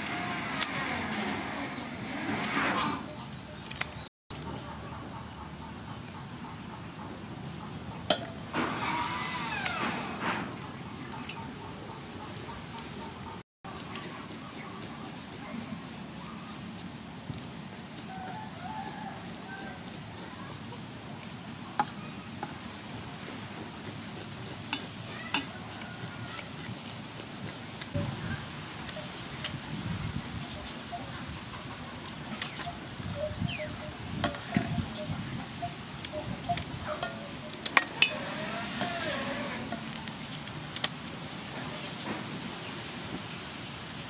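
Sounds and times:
outdoor background noise: 0.0s - 44.0s
scissors scraping fish scales: 13.7s - 20.7s, 22.9s - 28.0s.

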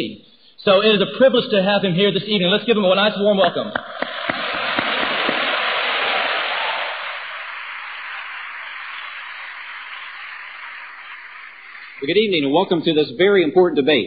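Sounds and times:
audience applauding: 3.8s - 12.3s.

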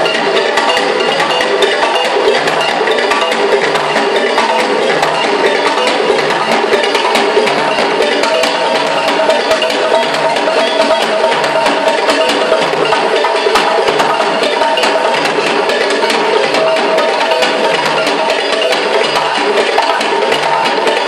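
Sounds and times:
hand drum ensemble playing: 0.0s - 21.0s.

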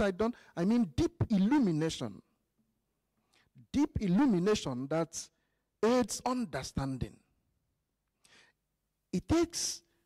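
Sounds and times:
man breathing in: 8.2s - 8.6s.

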